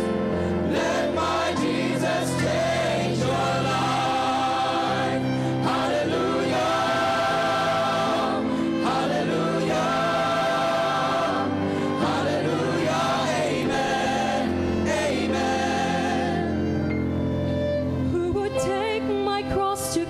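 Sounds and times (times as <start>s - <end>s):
choir singing gospel: 0.0s - 17.5s
keyboard: 0.0s - 20.0s
violins: 0.0s - 20.0s.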